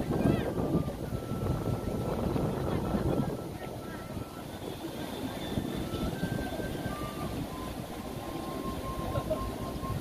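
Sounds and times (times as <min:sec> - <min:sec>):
faint indistinct voices: 0:00.0 - 0:10.0
wind rumbling on microphone: 0:00.0 - 0:10.0.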